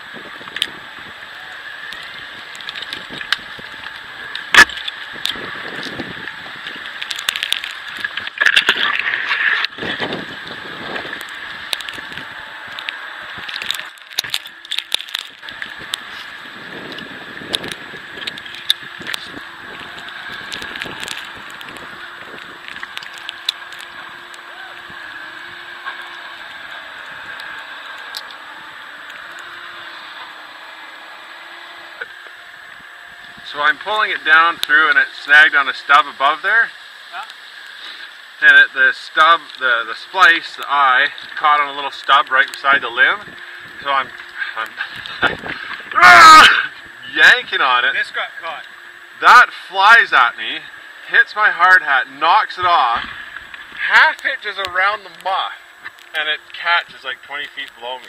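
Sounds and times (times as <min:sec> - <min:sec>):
steady background noise: 0:00.0 - 0:58.0
rope rustling and scraping: 0:01.7 - 0:34.0.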